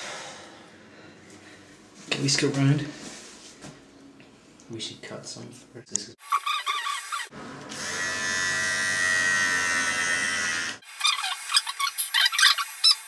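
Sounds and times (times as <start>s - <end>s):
electric hair clippers buzzing: 6.9s - 13.0s.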